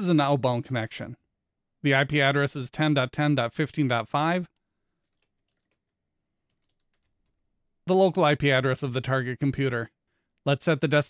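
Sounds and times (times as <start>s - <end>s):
faint keyboard keystrokes: 5.0s - 7.4s.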